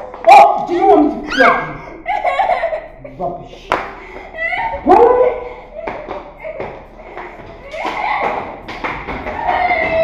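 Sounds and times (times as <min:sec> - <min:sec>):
barefoot footsteps on tiles: 0:03.7 - 0:10.0.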